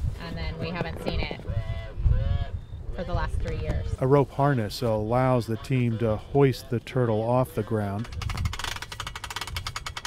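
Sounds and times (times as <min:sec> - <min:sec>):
winch ratchet clicking rapidly: 0:08.0 - 0:10.0.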